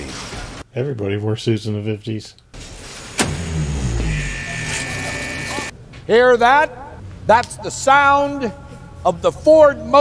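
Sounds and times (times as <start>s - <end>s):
heavy machinery running down: 3.2s - 5.7s
steady high tone: 3.6s - 5.7s.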